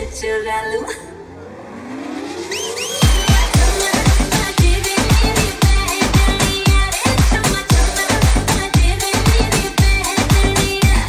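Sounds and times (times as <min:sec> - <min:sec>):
rising synth sweep: 0:00.0 - 0:06.2
dance music: 0:00.0 - 0:11.0.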